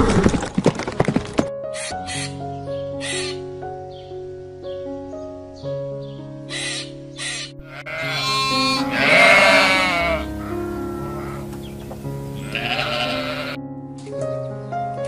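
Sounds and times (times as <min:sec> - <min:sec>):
background music: 0:01.0 - 0:15.0
sheep bleating: 0:07.6 - 0:11.5, 0:12.4 - 0:13.6.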